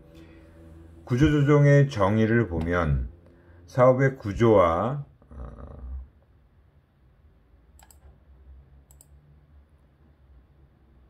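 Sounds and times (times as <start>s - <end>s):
low hum: 0.0s - 11.0s
small sharp clicks: 7.8s - 8.2s, 8.9s - 9.2s.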